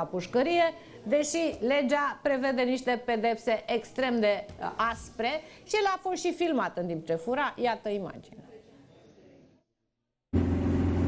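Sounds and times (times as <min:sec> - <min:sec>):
car engine and road noise: 0:10.4 - 0:11.0.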